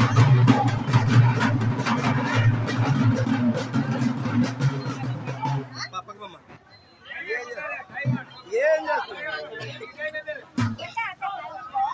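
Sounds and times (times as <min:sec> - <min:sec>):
drums beating fast rhythm: 0:00.0 - 0:06.2, 0:07.2 - 0:11.3
large crowd noise: 0:00.0 - 0:11.9.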